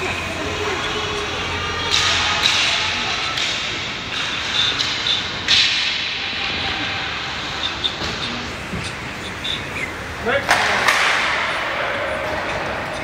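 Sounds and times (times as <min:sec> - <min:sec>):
faint voices: 0:00.0 - 0:13.0
hockey sticks clacking: 0:00.0 - 0:13.0.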